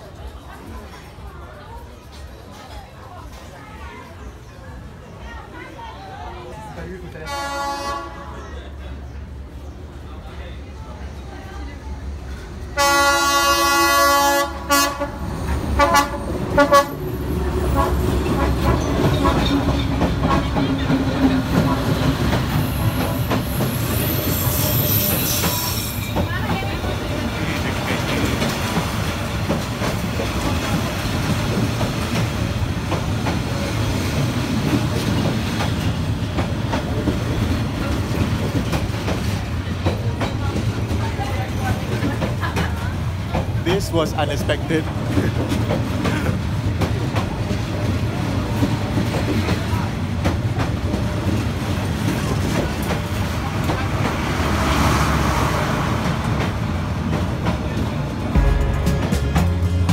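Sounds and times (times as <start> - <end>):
train rumbling and clattering past: 0.0 - 59.9
diesel train horn: 7.2 - 8.5, 12.8 - 17.1, 17.7 - 19.6, 58.3 - 59.9.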